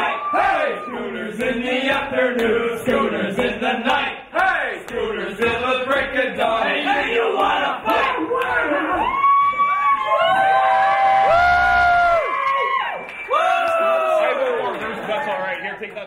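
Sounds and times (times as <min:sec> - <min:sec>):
group singing unaccompanied: 0:00.0 - 0:09.2.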